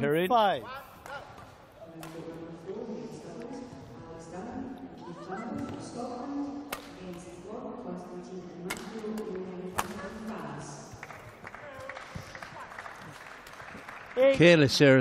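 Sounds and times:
background voices in a hall: 0.0s - 15.0s
badminton racket hitting shuttlecock: 6.6s - 7.4s, 8.6s - 10.3s.

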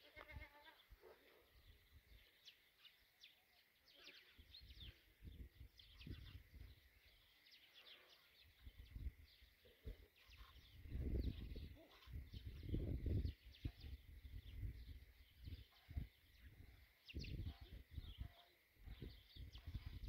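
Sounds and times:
small birds chirping: 0.0s - 20.0s.

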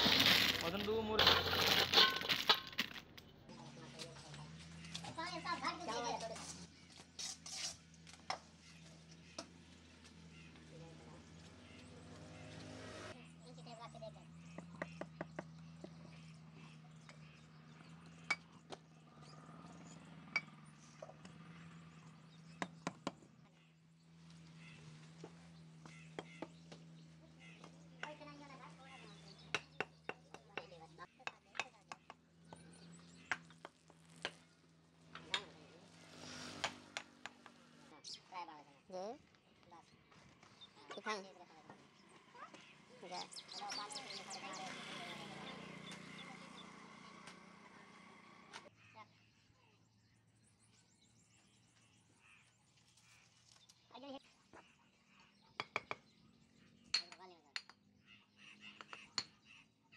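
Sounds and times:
hammer tapping bricks: 29.4s - 34.4s, 55.6s - 56.1s, 56.9s - 57.9s, 58.7s - 59.4s.

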